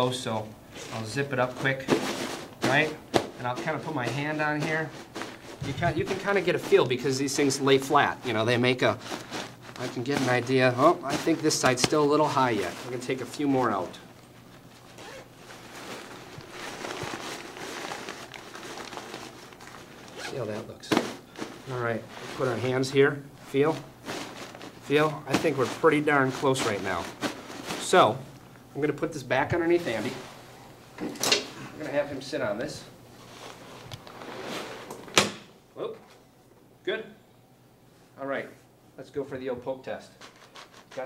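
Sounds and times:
fabric and plastic crinkling: 0.7s - 28.5s, 29.4s - 30.5s, 33.1s - 34.9s
zipper unzipping: 14.9s - 15.6s, 20.0s - 20.4s.

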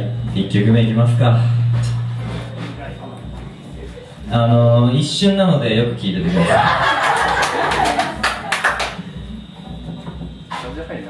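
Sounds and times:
low repeating beat: 0.0s - 11.0s
audience clapping: 6.9s - 9.1s.

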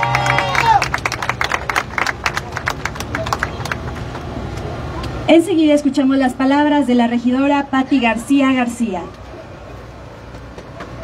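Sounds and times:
people applauding: 0.0s - 4.2s.

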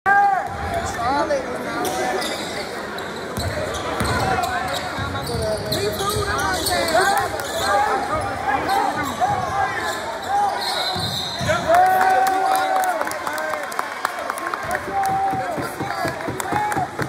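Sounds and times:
crowd voices: 0.1s - 17.0s
sneakers squeaking on court: 1.8s - 11.5s.

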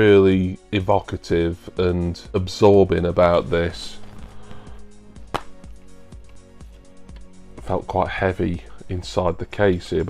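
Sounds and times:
quiet background music: 0.0s - 10.0s
plastic case snapping open: 5.3s - 5.7s.

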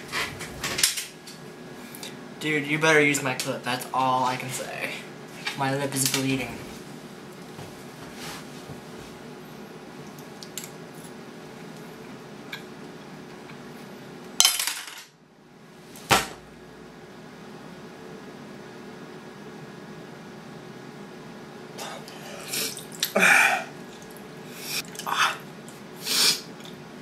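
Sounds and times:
sharp knock: 16.1s - 16.4s.

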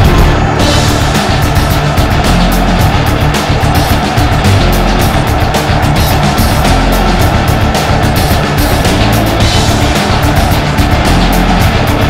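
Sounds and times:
loud music with driving drum beat: 0.0s - 12.0s.

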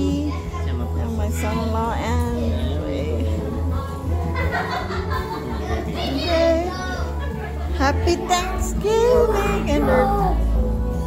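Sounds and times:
background music with low bass: 0.0s - 11.0s
voices with children: 5.5s - 10.6s.

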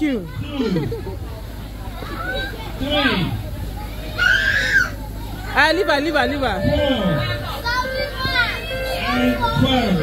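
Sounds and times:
children calling and chattering: 0.0s - 10.0s
background music: 5.7s - 8.2s.

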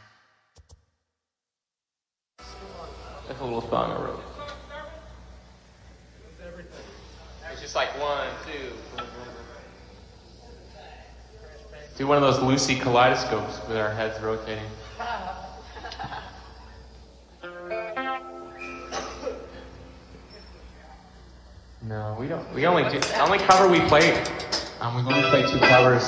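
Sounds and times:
steady low hum: 2.4s - 26.0s
electric guitar chord ringing: 17.4s - 20.3s, 23.5s - 26.0s
quiet indistinct speech: 19.0s - 22.9s.

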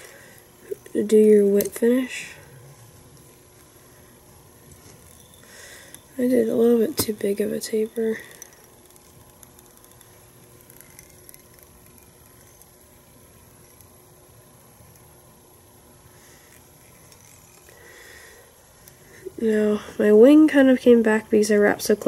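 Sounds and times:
faint hum: 0.0s - 22.0s.

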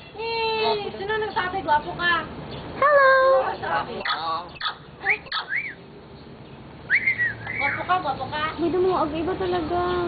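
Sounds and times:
myna bird whistling: 4.0s - 5.9s, 6.8s - 8.2s.

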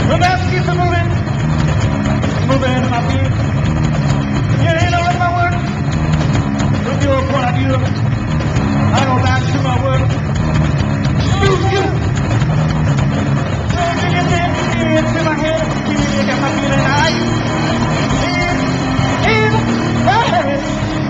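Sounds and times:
distorted guitar and bass riff: 0.0s - 21.0s.

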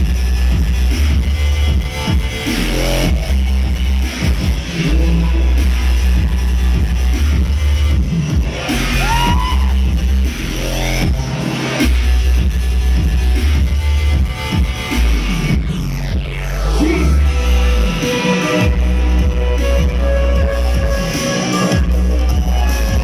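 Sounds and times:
electronic bass music: 0.0s - 23.0s.

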